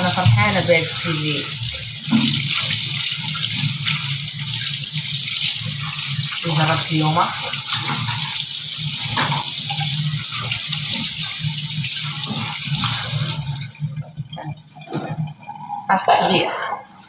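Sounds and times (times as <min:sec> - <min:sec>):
tap water splashing on metal: 0:00.0 - 0:15.6.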